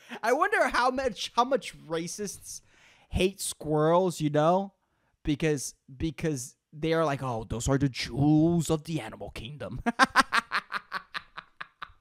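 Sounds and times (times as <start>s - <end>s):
man laughing: 9.8s - 12.0s.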